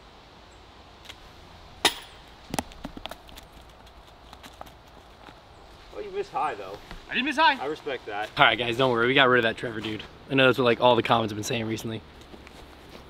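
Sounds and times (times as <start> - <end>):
sharp crack: 1.8 - 3.3.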